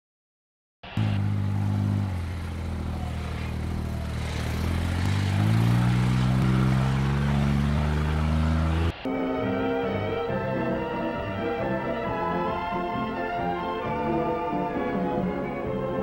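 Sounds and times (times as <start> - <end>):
car engine driving: 0.9 - 16.0.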